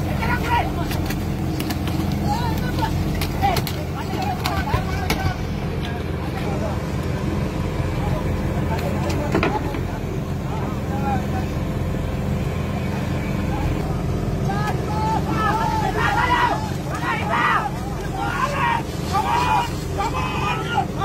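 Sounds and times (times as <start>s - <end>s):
boat engine running: 0.0s - 21.0s
men calling and shouting: 0.0s - 21.0s.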